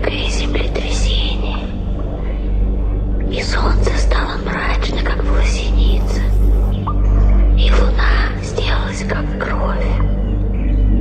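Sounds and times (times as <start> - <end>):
dark ambient drone music: 0.0 - 11.0
person whispering: 3.4 - 6.9.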